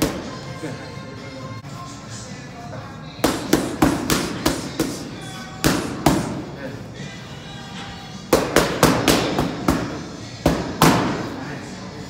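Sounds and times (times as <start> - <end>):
boxing gloves hitting focus mitts: 3.2 - 5.0, 8.3 - 11.3.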